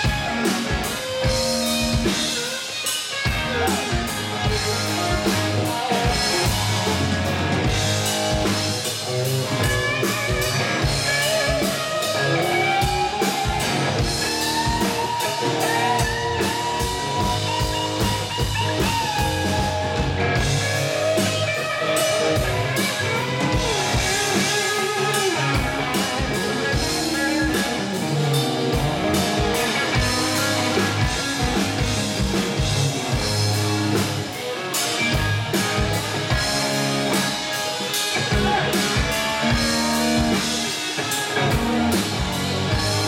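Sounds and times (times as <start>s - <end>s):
bass: 0.0s - 43.0s
drum kit: 0.0s - 43.0s
electric guitar lead: 0.0s - 43.0s.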